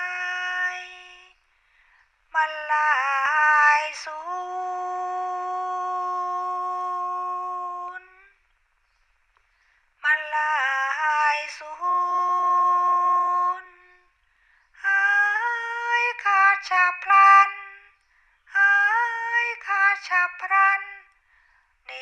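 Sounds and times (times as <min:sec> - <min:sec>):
person chanting in high voice: 0:00.0 - 0:01.4, 0:02.3 - 0:08.4, 0:10.0 - 0:14.1, 0:14.8 - 0:21.1.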